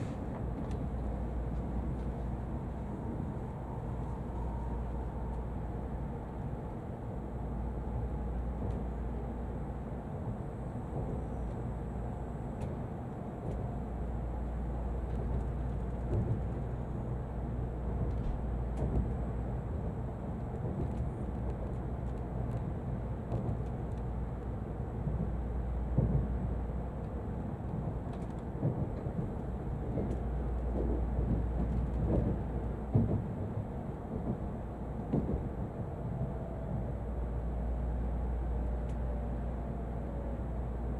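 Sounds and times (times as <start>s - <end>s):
train cabin low rumble: 0.0s - 40.9s.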